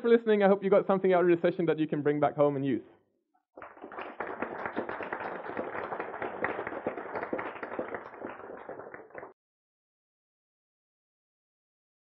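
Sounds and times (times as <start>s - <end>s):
audience applauding: 3.6s - 9.4s.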